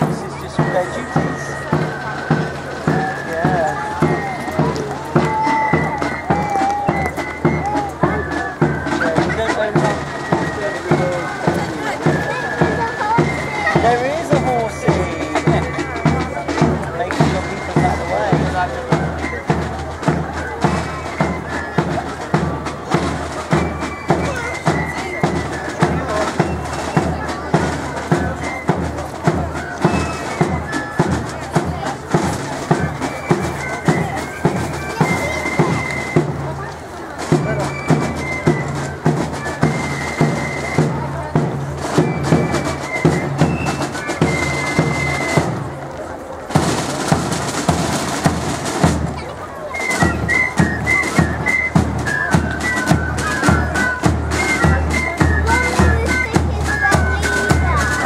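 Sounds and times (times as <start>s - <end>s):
high flute melody: 0.0s - 58.0s
side drums beating: 0.0s - 58.0s.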